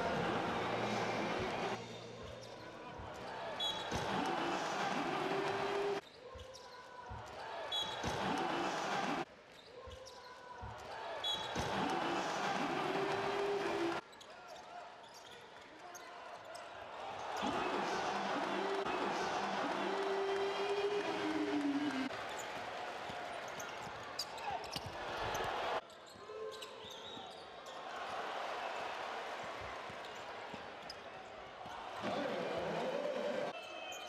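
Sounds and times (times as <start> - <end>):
crowd noise with shouts: 0.0 - 6.0, 6.9 - 9.3, 10.4 - 15.0, 15.8 - 26.8, 27.4 - 34.0.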